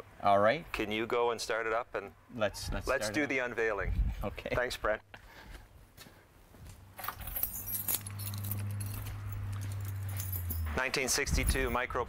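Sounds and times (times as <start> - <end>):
keys jangling: 7.0 - 11.8.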